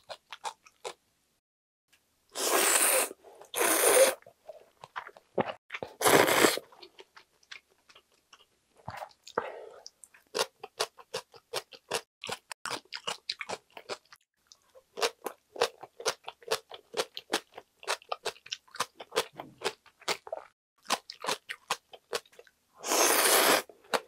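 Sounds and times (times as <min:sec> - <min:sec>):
loud noodle slurp: 0:02.4 - 0:04.2, 0:06.0 - 0:06.6, 0:22.8 - 0:23.7.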